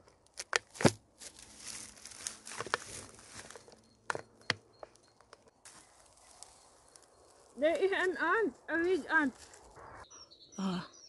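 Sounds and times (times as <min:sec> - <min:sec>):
tape snaps and clicks: 0:00.3 - 0:01.0.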